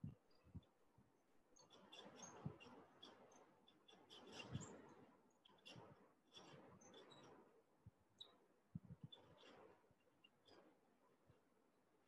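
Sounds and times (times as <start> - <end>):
faint high-pitched chirps: 1.5 - 7.5, 8.1 - 10.8.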